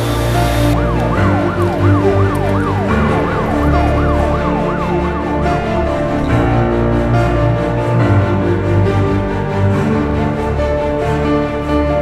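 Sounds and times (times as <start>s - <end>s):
emergency siren yelping: 0.0s - 6.5s.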